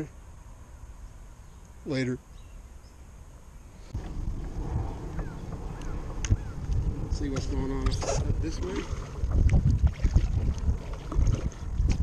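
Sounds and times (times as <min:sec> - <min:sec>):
wind buffeting microphone: 0:03.9 - 0:12.0
paddle strokes in water: 0:07.9 - 0:12.0.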